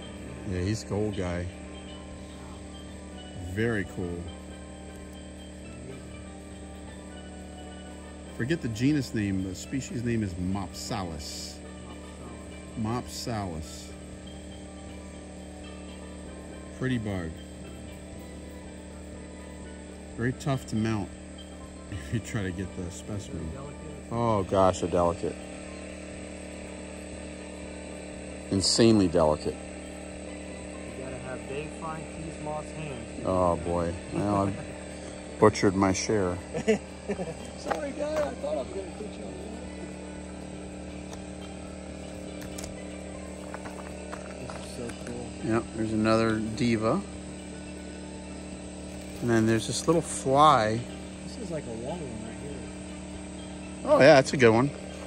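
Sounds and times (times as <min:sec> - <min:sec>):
faint insect chirps: 0:00.0 - 0:55.0
generator humming: 0:00.0 - 0:55.0.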